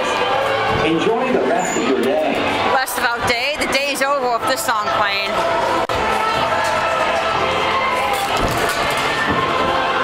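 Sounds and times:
crowd chatter: 0:00.0 - 0:10.0
carousel music: 0:02.6 - 0:10.0.

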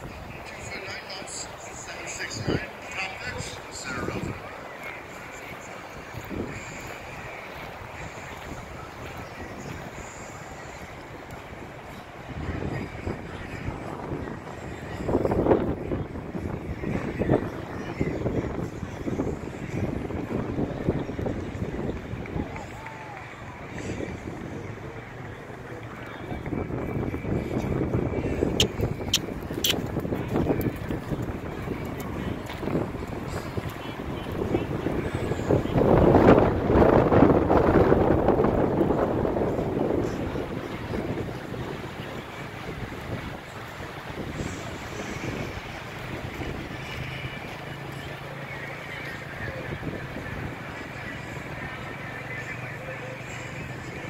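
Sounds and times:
gusty wind buffeting microphone: 0:00.0 - 0:52.6
faint distant voices: 0:00.0 - 0:54.0.

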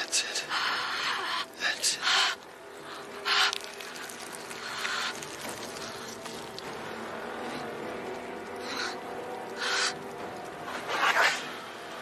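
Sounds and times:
low film score drone: 0:00.0 - 0:12.0.

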